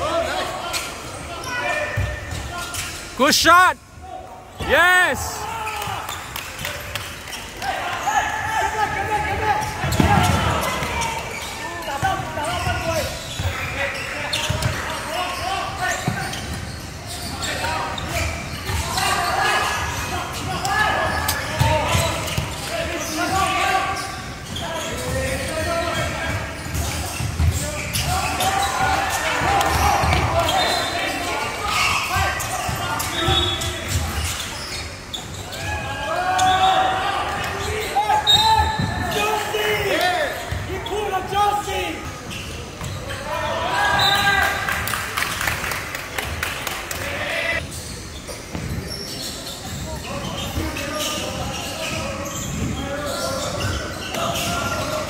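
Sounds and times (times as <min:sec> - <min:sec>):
players and spectators calling: 0:00.0 - 0:45.8, 0:46.4 - 0:47.6.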